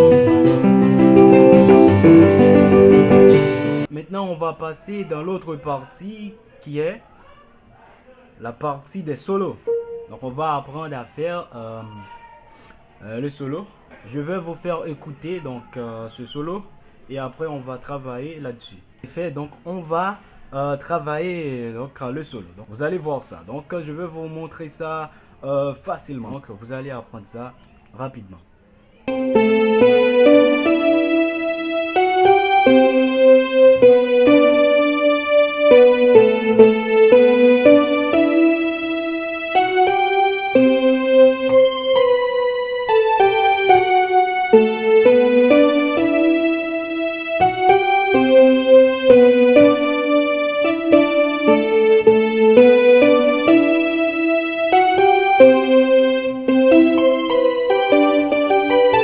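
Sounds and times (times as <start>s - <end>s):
keyboard playing piano melody: 0.0s - 3.9s, 9.5s - 10.6s, 29.1s - 59.0s.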